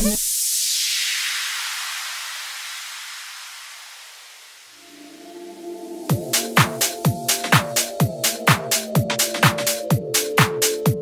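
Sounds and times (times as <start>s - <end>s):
white-noise sweep: 0.0s - 9.4s.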